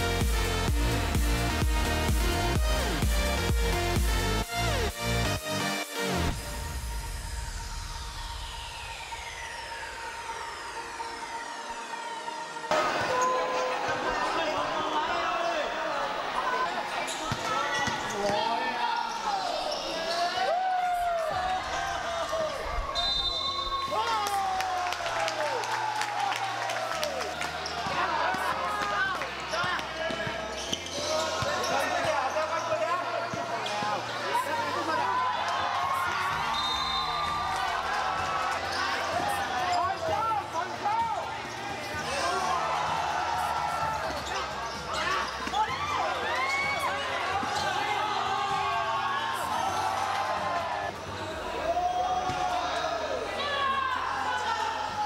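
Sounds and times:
spectators chattering: 7.0s - 23.7s, 27.1s - 55.0s
basketball bouncing on court: 29.6s - 32.3s.

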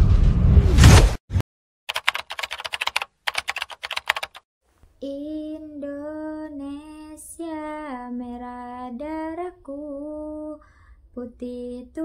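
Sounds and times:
keyboard typing: 1.9s - 4.4s.

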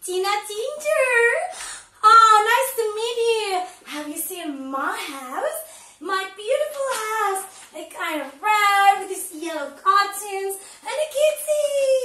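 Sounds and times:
woman speaking in sing-song voice: 0.0s - 12.0s.

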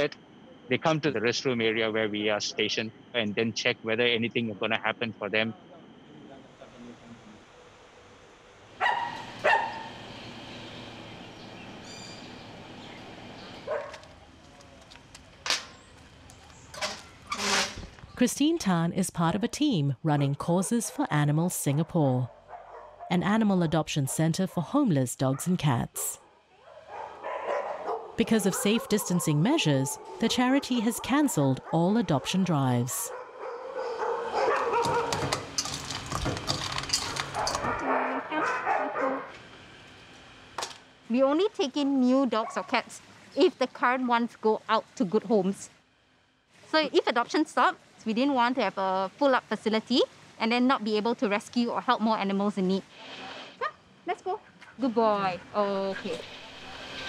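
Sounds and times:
outdoor background noise: 0.0s - 57.0s
dogs barking: 8.8s - 10.0s, 13.6s - 14.1s, 21.7s - 23.7s, 25.2s - 25.7s, 26.5s - 35.4s, 37.2s - 39.4s, 42.3s - 42.9s
dogs whining: 33.0s - 35.4s, 36.9s - 39.4s.

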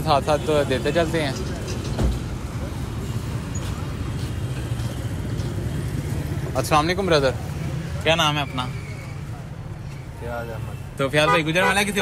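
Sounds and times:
road traffic hum: 0.0s - 12.0s.

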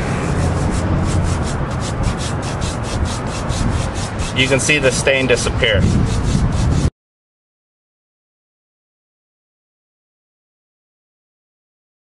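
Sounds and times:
hand scrubbing granules on concrete: 0.3s - 6.8s.

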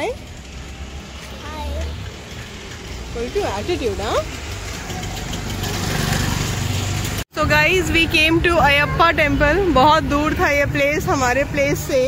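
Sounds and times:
motor vehicle engine running: 0.0s - 12.0s.

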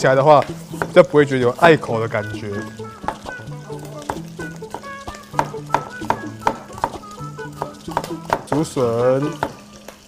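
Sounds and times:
oil sizzling in a pan: 0.0s - 10.0s
knife striking wooden cutting board: 0.4s - 1.7s, 2.5s - 3.4s, 4.0s - 7.0s, 7.6s - 9.6s.

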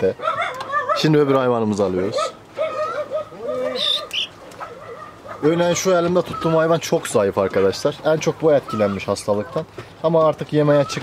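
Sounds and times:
chicken warbling: 0.1s - 1.2s, 2.0s - 6.7s
chicken squeaks: 2.6s - 5.2s.

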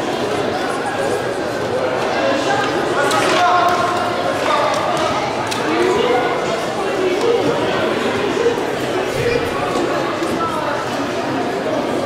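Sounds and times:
voices echoing in hall: 0.0s - 12.0s.

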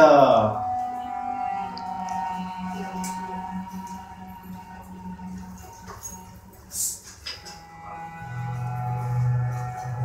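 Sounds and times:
eerie low musical drone: 0.0s - 6.7s, 7.4s - 10.0s
steady higher tones: 0.0s - 6.9s.

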